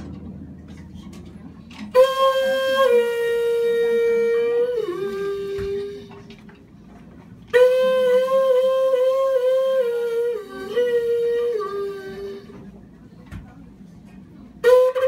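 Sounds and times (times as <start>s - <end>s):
small wind instrument notes: 1.6s - 13.0s, 14.4s - 15.0s.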